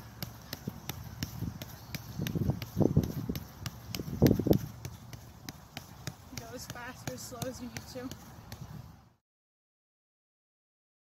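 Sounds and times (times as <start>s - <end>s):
soccer ball taps: 0.0s - 9.0s.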